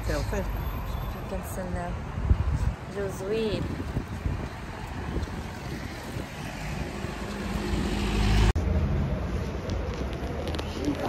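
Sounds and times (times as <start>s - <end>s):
street traffic: 0.0s - 11.0s
vehicle passing: 1.2s - 11.0s
wind buffeting microphone: 1.3s - 8.5s.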